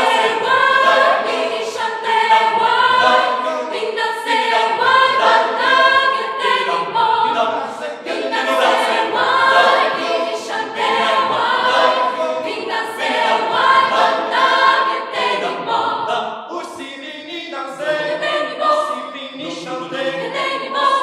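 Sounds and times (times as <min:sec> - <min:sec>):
mixed choir chanting in harmony: 0:00.0 - 0:21.0.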